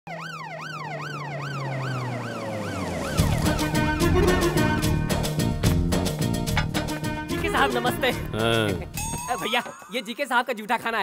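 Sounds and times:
police siren wailing: 0:00.1 - 0:05.1
music with strong beat: 0:03.5 - 0:07.2.

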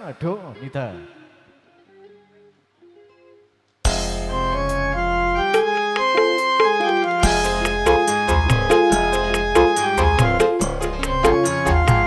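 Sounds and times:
electric guitar notes plucked: 0:03.9 - 0:12.0.

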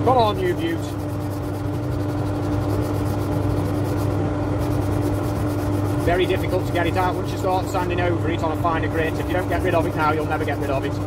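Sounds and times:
sandpaper rubbing spinning wood: 0:00.0 - 0:11.0
wood lathe humming: 0:00.0 - 0:11.0.

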